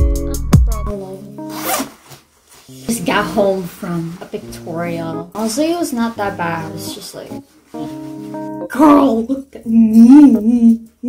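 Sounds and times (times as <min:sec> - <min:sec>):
zipper pulled open: 0:01.5 - 0:02.2.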